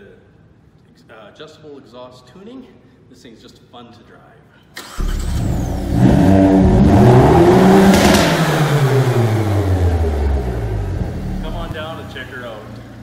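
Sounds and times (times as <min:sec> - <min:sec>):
car engine revving: 0:04.9 - 0:13.0.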